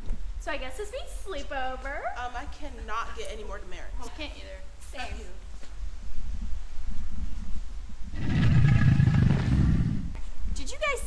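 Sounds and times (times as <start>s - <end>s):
deep rumbling dinosaur roar: 8.2s - 10.1s.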